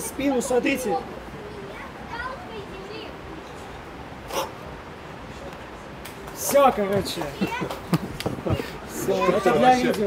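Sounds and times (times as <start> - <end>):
faint background conversation: 0.0 - 10.0.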